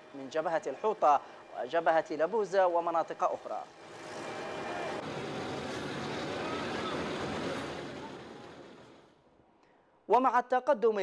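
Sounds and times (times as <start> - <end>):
truck engines running: 0.0 - 9.2
road and wind noise: 0.0 - 9.3.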